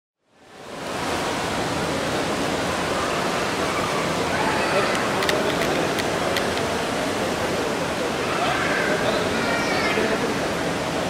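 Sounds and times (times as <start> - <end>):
busy airport din: 3.5 - 10.6.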